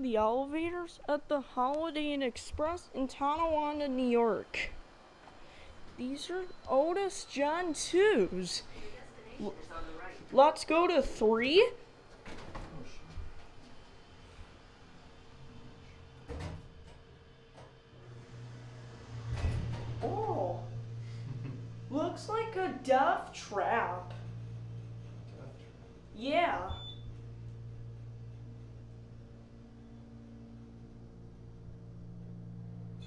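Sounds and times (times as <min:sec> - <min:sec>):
elevator low hum: 0:00.0 - 0:33.0
elevator door closing with a thud: 0:19.0 - 0:20.1.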